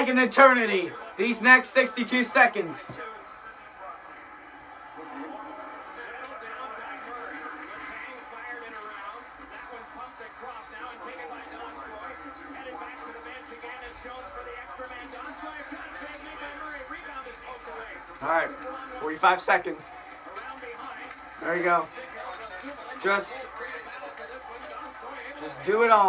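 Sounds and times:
faint commentary through tv speakers: 0.0s - 26.0s.

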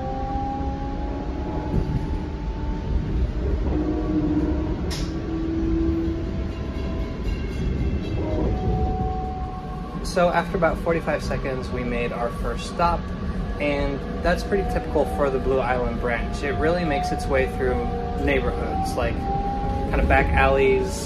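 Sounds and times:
faint whining tones: 0.0s - 21.0s
train wheels rumbling on rails: 0.0s - 21.0s.

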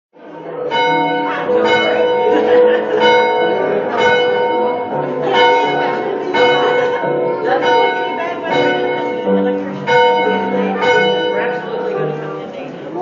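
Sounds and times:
church bells ringing: 0.6s - 12.5s.

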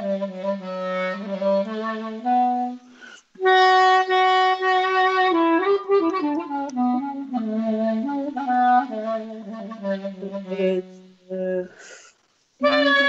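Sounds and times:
solo clarinet folk melody: 0.0s - 11.6s, 12.6s - 13.0s.

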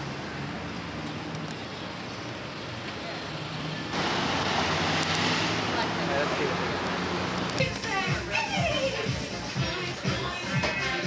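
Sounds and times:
steady traffic noise: 0.0s - 11.0s
loud rushing hiss: 3.9s - 7.4s
faint voices: 5.6s - 11.0s.

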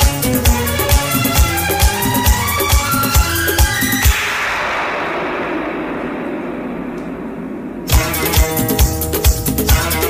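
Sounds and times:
film music: 0.4s - 10.0s
loud musical hit: 3.0s - 10.0s.

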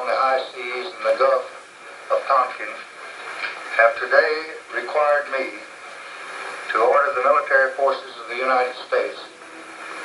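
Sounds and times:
narration through television speaker: 0.0s - 10.0s.

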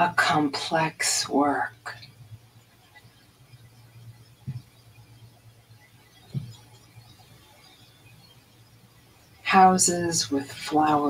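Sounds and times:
faint low hum: 0.0s - 11.0s
soft knocks: 6.3s - 6.6s.

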